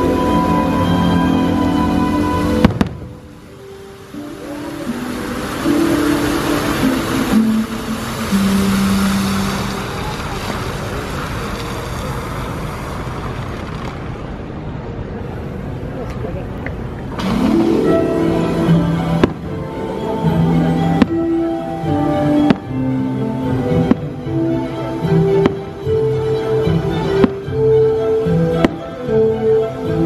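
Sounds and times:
music with long low notes: 0:00.0 - 0:11.3, 0:17.2 - 0:30.0
noisy rushing sound: 0:00.0 - 0:30.0
firework bang: 0:02.6 - 0:03.3, 0:17.2 - 0:17.7, 0:19.1 - 0:19.6.

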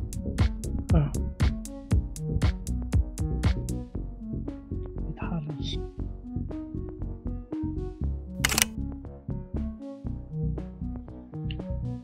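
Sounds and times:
camera shutter burst: 0:08.4 - 0:08.8.

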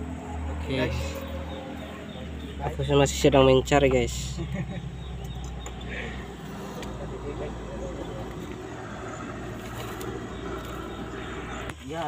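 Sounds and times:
steady low rumble: 0:00.0 - 0:11.8.

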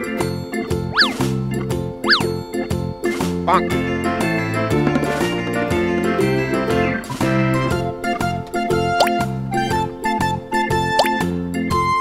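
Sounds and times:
upbeat children's music: 0:00.0 - 0:12.0
rising pop sound effects: 0:08.8 - 0:09.3.

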